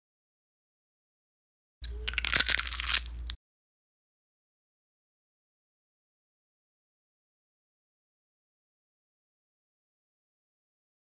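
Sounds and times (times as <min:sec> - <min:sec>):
crunching scratchy sound effect: 0:02.0 - 0:03.4.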